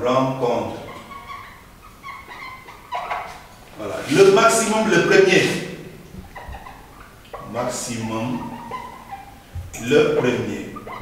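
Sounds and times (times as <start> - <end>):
whiteboard marker squeaking: 6.2 - 11.0.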